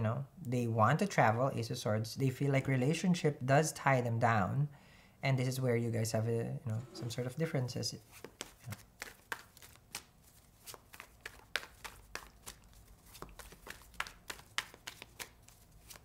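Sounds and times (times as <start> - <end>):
cards being shuffled: 8.0 - 16.0.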